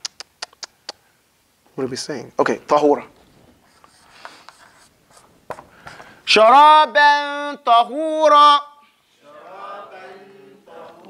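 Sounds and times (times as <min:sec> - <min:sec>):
marker scratching on whiteboard: 0:03.6 - 0:05.3.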